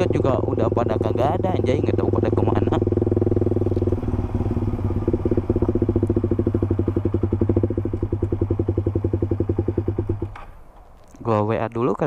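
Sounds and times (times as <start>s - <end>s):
motorcycle engine decelerating: 0.0s - 12.0s.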